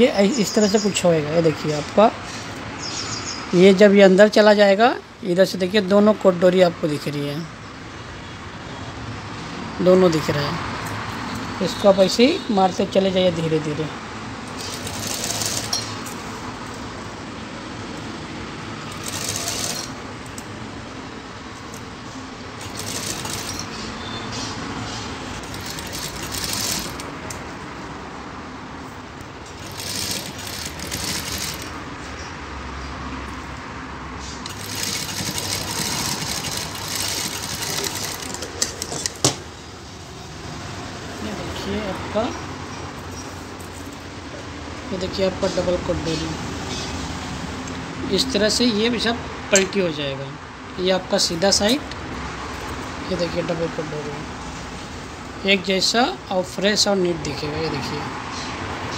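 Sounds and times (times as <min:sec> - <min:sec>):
sewing machine stitching: 0:14.6 - 0:15.9, 0:18.9 - 0:20.0, 0:22.6 - 0:23.8, 0:25.4 - 0:27.1, 0:29.6 - 0:31.8, 0:34.4 - 0:39.1.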